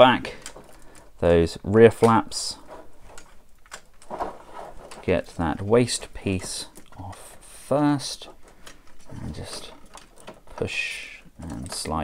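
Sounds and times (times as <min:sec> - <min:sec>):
plastic panels clicking and scraping: 0:00.0 - 0:12.0.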